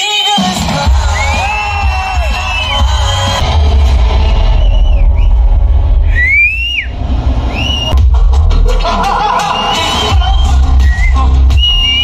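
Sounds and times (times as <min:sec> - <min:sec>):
deep bass: 0:00.8 - 0:12.0
film soundtrack music: 0:00.8 - 0:12.0
shrill gliding whistles: 0:01.0 - 0:03.4, 0:04.1 - 0:08.0, 0:09.6 - 0:12.0.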